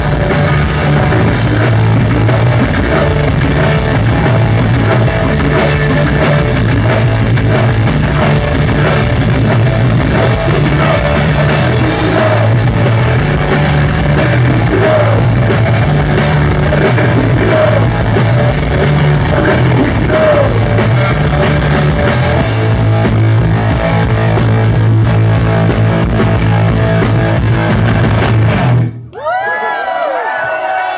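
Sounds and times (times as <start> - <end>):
drum kit: 0.0 - 29.0
distorted electric guitar: 0.0 - 29.1
bass guitar: 0.0 - 29.2.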